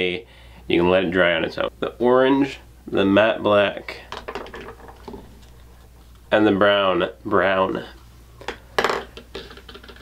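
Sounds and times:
plastic cups clattering: 4.1s - 5.5s.

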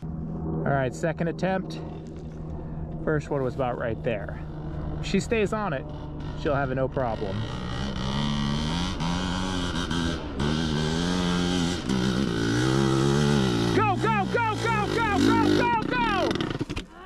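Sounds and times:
dirt bike engines running: 0.0s - 17.0s
engine revving in quick blips: 4.4s - 16.8s.

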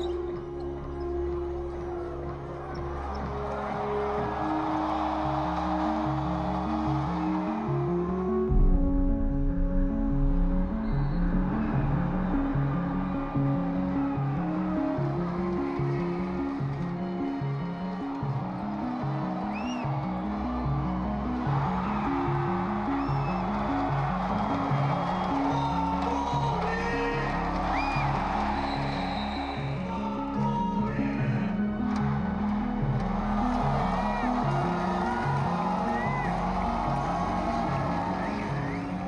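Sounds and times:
arena crowd noise: 0.0s - 9.3s, 10.3s - 39.0s.

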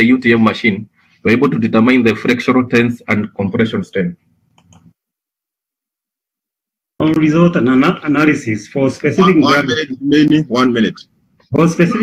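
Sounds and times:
faint small clicks: 4.5s - 4.9s
person speaking: 7.0s - 12.0s.

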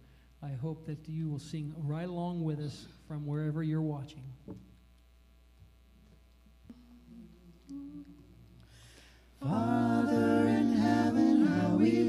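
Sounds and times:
person humming low notes: 6.7s - 8.6s.

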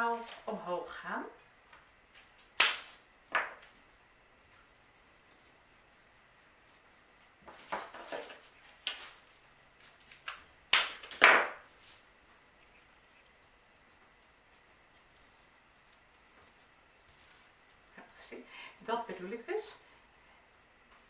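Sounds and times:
dry stems clicking: 7.7s - 11.3s
scratchy rustles: 11.7s - 17.8s.

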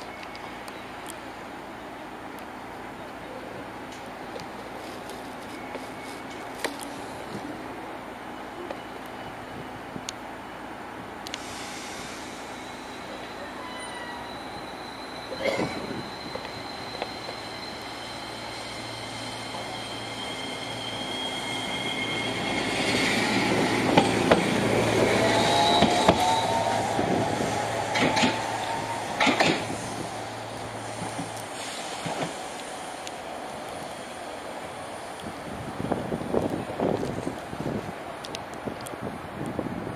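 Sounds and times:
tram electric drive whine: 0.0s - 39.9s.

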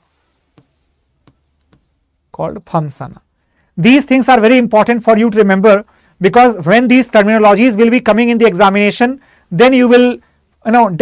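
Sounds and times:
pen tapping on writing board: 0.5s - 2.0s.

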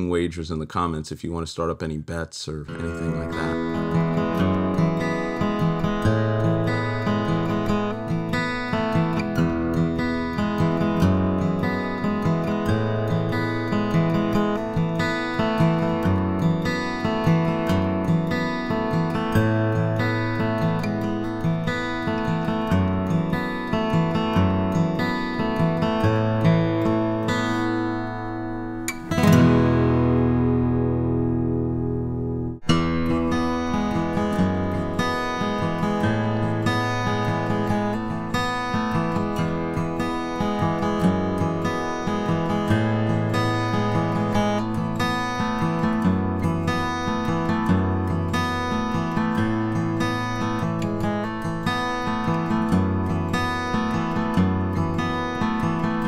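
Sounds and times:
acoustic guitar riff: 0.0s - 56.0s
loud strummed guitar chord: 2.7s - 7.6s, 29.0s - 34.2s.

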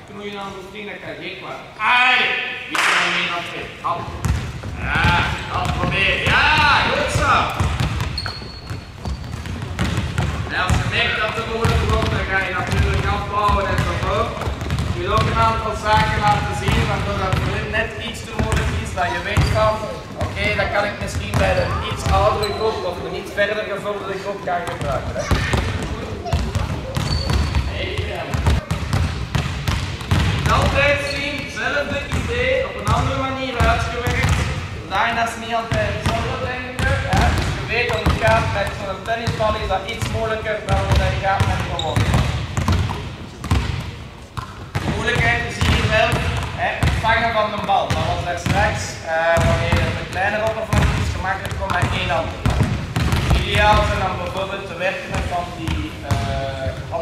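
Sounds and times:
balls bouncing on hall floor: 2.7s - 23.7s, 24.3s - 57.0s
children chattering: 25.0s - 27.3s.

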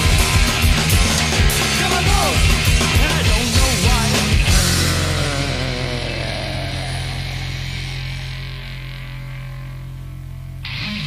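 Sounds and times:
rock band chord ringing out: 0.0s - 11.0s
amplifier hum: 4.5s - 10.7s.

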